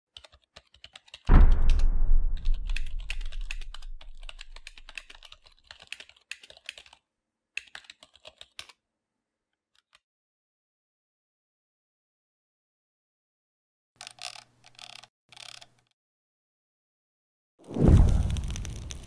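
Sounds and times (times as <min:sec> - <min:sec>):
keyboard key clicks: 0:00.2 - 0:07.0
deep boom: 0:01.3 - 0:04.8.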